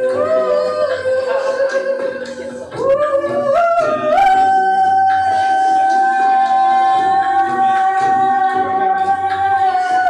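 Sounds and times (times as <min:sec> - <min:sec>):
looped layered voices: 0:00.0 - 0:10.0.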